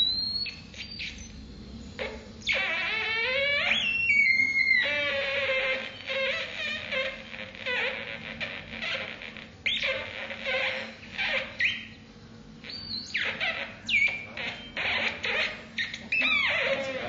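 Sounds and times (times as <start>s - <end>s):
electronic squeaks and chirps: 0.0s - 17.0s.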